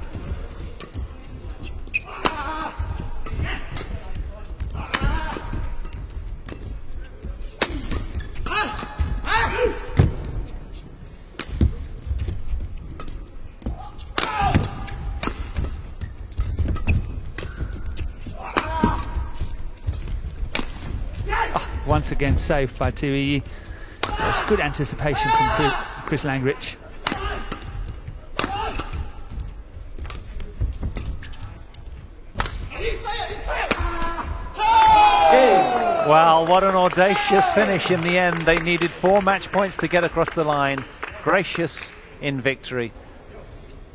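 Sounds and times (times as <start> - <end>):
shoe squeaks: 1.6 - 2.2, 8.1 - 8.4, 15.9 - 18.2
rackets hitting shuttlecock: 1.9 - 4.1, 4.8 - 6.8, 11.3 - 11.8, 12.9 - 21.0, 27.0 - 29.2, 32.3 - 32.7, 33.5 - 34.4
player shouting: 32.8 - 36.2.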